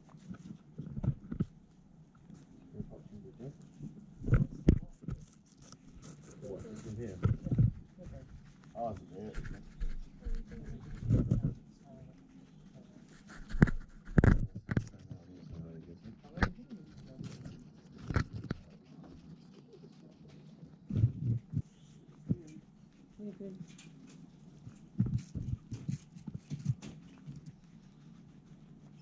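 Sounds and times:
guinea pigs munching: 0.0 - 29.0.

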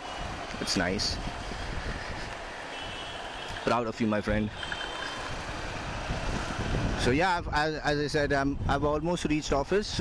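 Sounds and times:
road noise: 0.0 - 10.0.

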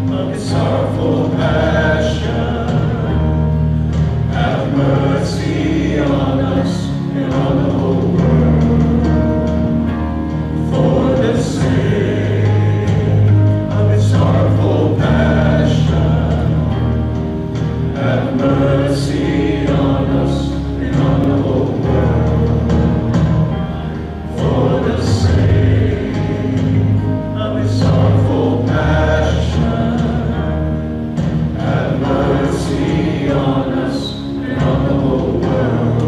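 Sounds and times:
voices singing together: 0.0 - 36.0
worship band playing: 0.0 - 36.0.

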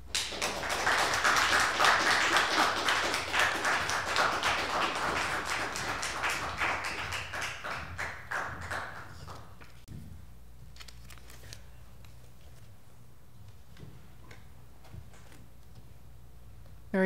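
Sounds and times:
audience applauding: 0.0 - 9.8.

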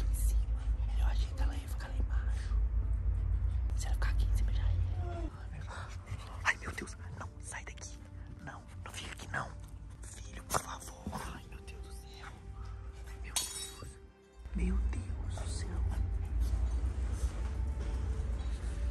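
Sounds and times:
person whispering: 0.0 - 2.5, 3.7 - 13.6.

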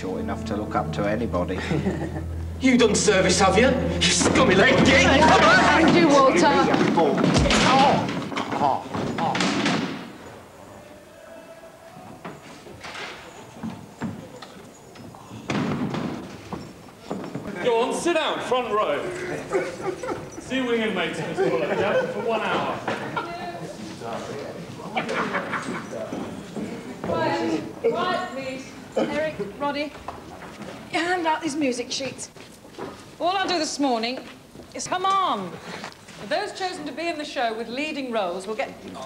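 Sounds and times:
man laughing: 1.5 - 2.4, 19.2 - 20.4
scattered laughter and voices: 1.5 - 2.5, 18.9 - 28.1
folding chairs knocking on wooden floor: 4.2 - 10.1, 15.0 - 17.6.

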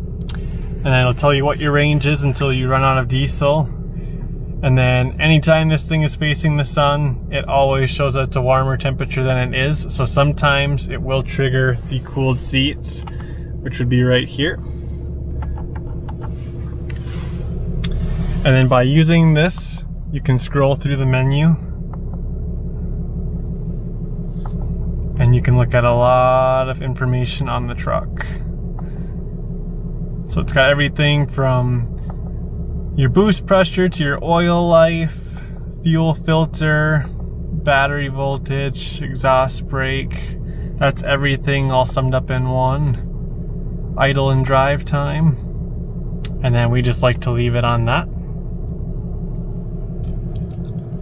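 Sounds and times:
diesel engine idling: 0.0 - 51.0.

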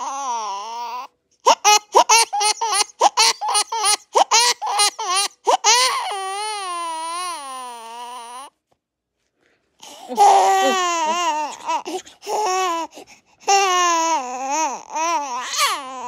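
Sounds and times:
infant crying: 0.0 - 8.5, 9.8 - 16.0.

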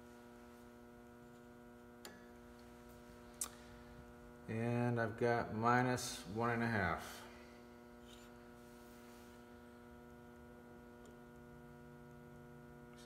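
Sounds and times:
faint electrical hum: 0.0 - 13.0.

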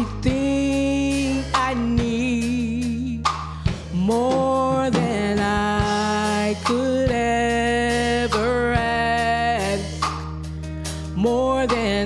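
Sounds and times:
woman singing into a microphone: 0.0 - 10.2, 10.9 - 12.0
sustained instrumental backing: 0.0 - 12.0.

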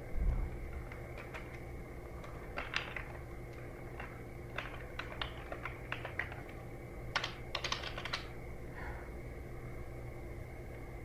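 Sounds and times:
computer keyboard keystrokes: 0.7 - 8.3.

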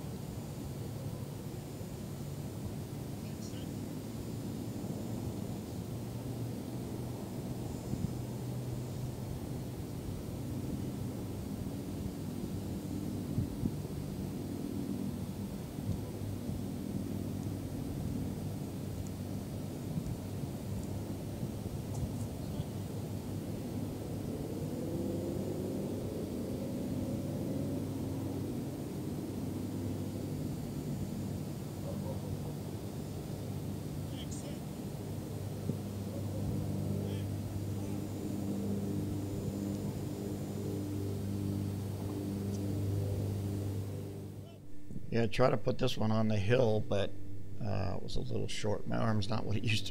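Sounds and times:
distant engine drone: 0.0 - 49.9.

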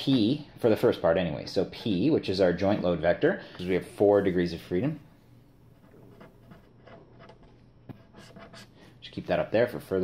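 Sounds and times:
pen scratching on paper: 5.7 - 8.8.

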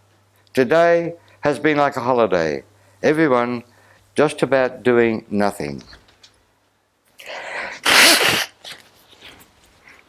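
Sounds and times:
man sneezing: 7.6 - 8.8.

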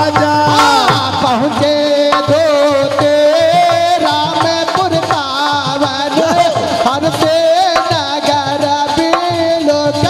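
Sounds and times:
hand drum beat: 0.0 - 10.0
harmonium melody: 0.0 - 10.0.

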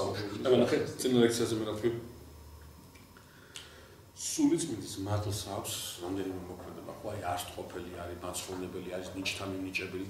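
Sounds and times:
faint hiss: 0.0 - 10.0
low steady hum: 0.0 - 10.0.

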